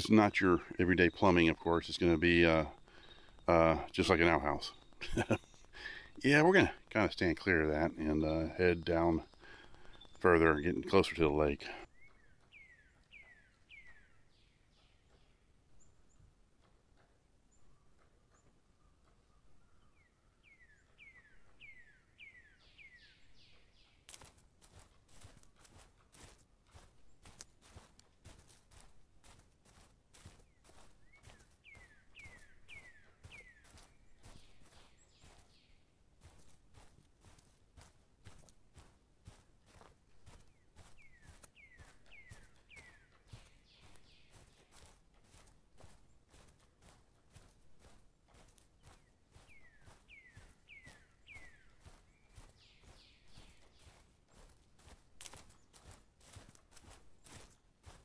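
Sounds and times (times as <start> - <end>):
footsteps on dirt trail: 0.0 - 15.9, 17.8 - 58.0.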